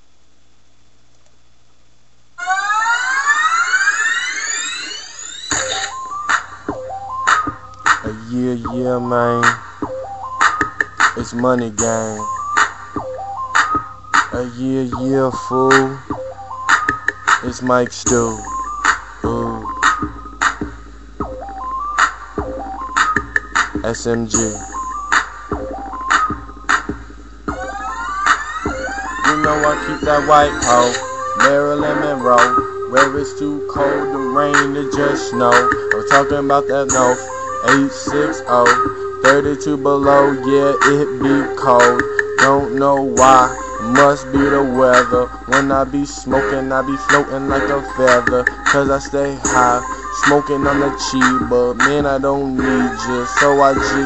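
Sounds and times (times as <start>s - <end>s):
faint steady hiss: 0.0s - 2.4s
rising siren-like tones: 2.4s - 7.3s, 27.5s - 50.7s
hip hop instrumental beat: 2.6s - 54.0s.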